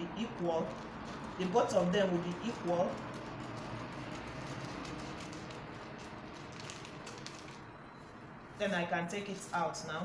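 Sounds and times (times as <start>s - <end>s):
scissors cutting paper: 0.5s - 7.6s.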